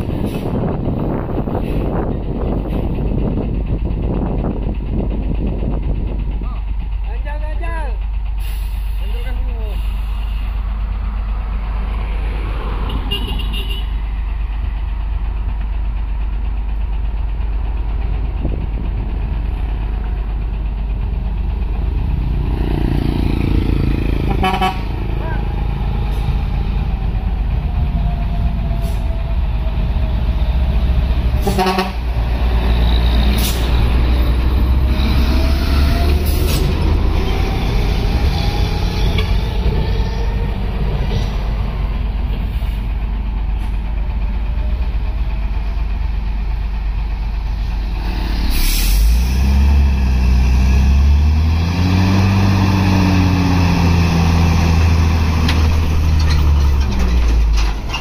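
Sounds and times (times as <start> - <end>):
truck diesel engine under load: 0.0 - 58.0
truck horn toot: 12.9 - 14.0, 24.2 - 25.0, 31.4 - 32.1.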